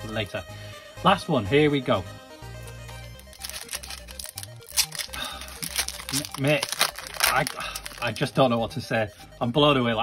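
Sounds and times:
background music: 0.0 - 10.0
foil wrapper crinkling and tearing: 3.1 - 8.3.

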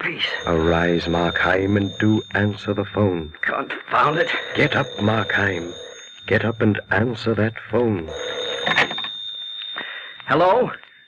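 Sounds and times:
telephone bell ringing: 0.2 - 10.7.

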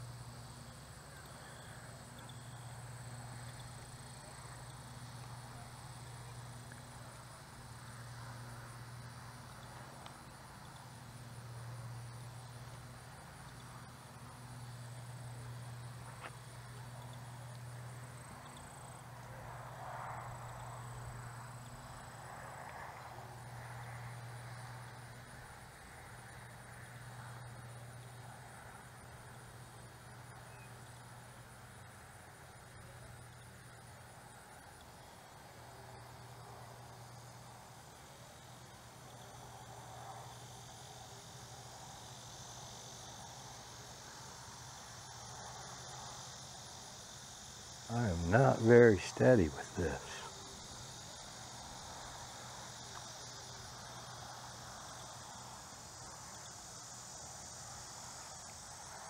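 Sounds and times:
insects chirring: 0.0 - 59.0.

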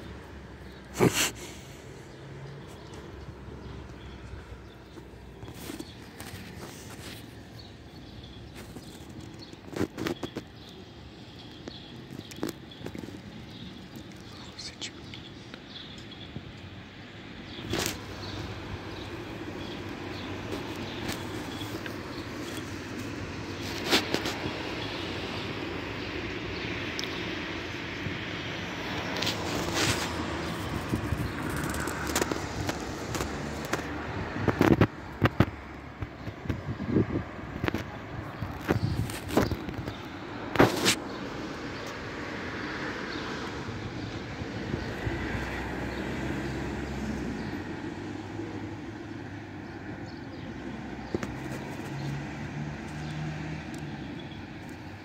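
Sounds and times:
city traffic noise: 0.0 - 55.0.

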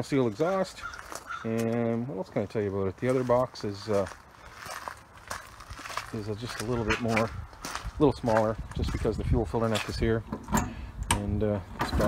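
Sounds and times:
footsteps on gravel: 0.0 - 10.2.

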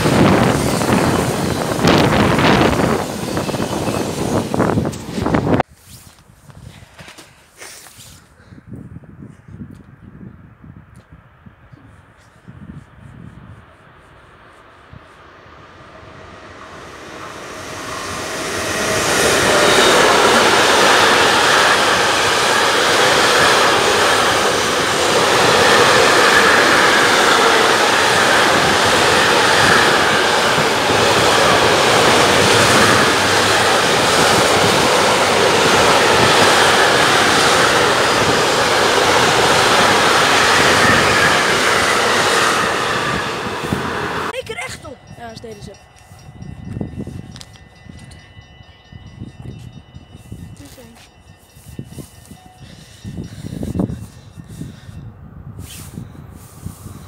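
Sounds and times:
freight train rumbling past: 0.0 - 5.6, 13.4 - 57.0.

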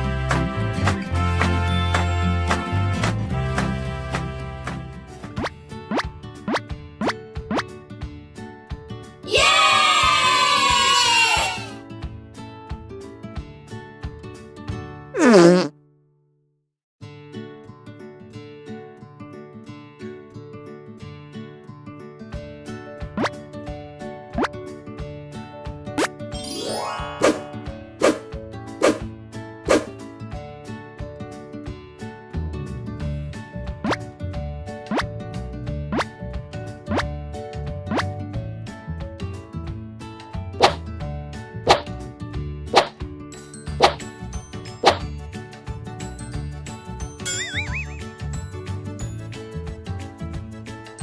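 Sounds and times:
light children's music: 0.0 - 15.0, 22.3 - 51.0
cartoon pop bloop: 5.4 - 7.6, 15.2 - 15.7, 47.3 - 48.1
buzzy cartoon squelch effect: 15.2 - 15.7.

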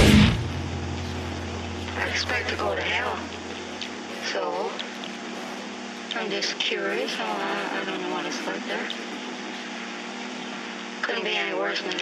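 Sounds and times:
heavy deathcore music: 0.0 - 1.0
low steady hum: 0.0 - 12.0.

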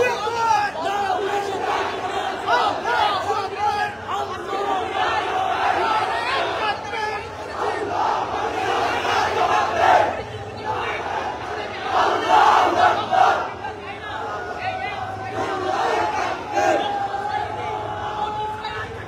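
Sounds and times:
crowd of men shouting: 0.0 - 19.0.

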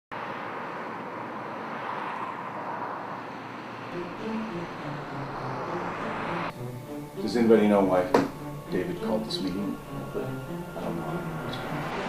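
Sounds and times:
traffic noise: 0.1 - 12.0.

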